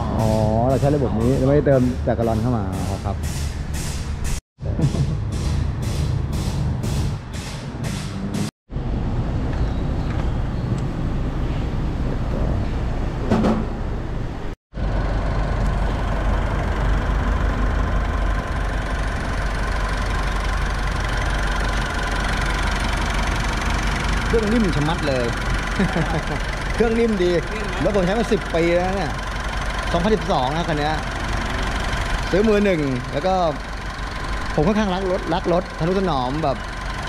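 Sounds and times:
diesel engine idling: 0.0s - 3.9s, 14.1s - 37.0s
workshop noise: 0.0s - 8.5s, 9.4s - 14.6s, 18.3s - 37.0s.

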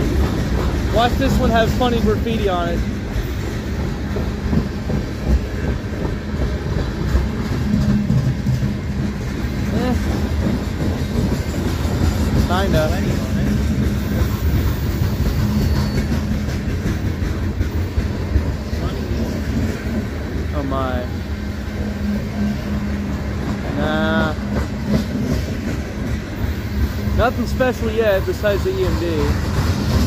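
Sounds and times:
train wheels rumbling on rails: 0.0s - 30.0s.

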